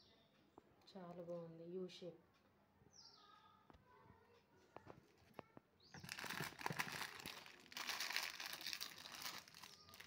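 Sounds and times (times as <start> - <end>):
packaging crumpling: 6.0 - 10.0.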